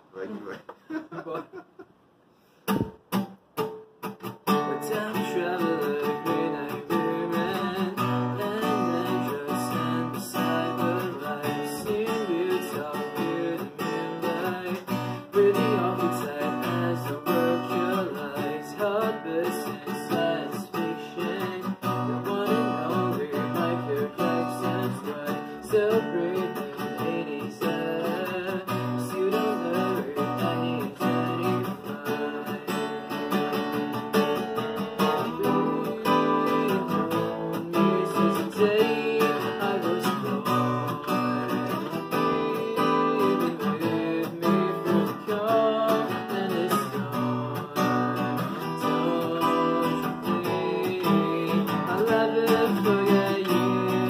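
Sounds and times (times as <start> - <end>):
acoustic guitar strumming: 2.6 - 54.0.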